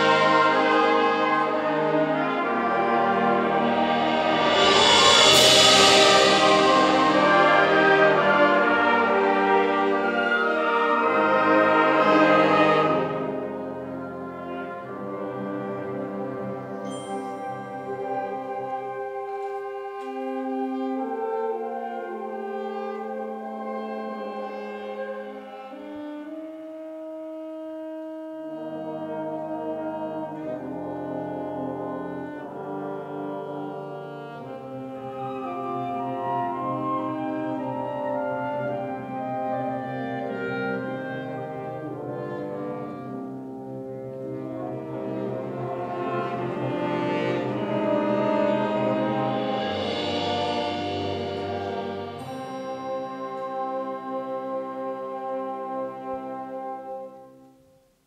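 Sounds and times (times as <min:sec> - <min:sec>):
wind band playing chords: 0:00.0 - 0:57.8.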